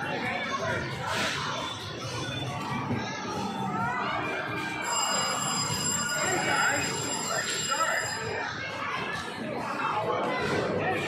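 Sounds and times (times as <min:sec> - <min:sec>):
busy background voices: 0:00.0 - 0:11.0
high electronic ringing: 0:04.8 - 0:08.5.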